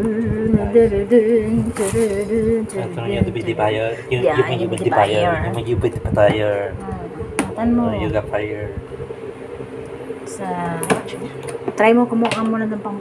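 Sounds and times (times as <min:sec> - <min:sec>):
people's voices: 0:00.0 - 0:08.8.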